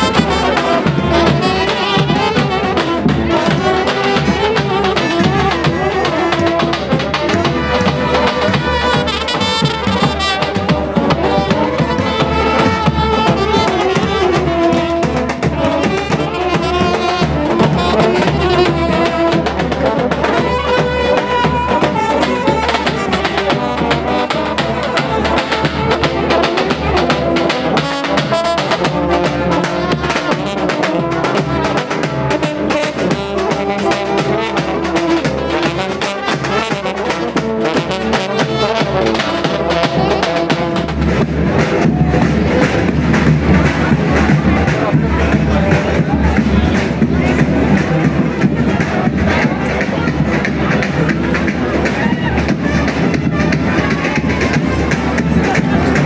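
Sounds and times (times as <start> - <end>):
bass drum beat: 0.0 - 56.0
street brass band playing: 0.0 - 56.0.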